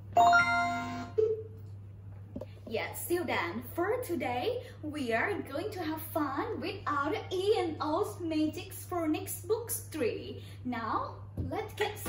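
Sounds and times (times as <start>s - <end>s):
short bright musical jingle: 0.2s - 1.2s.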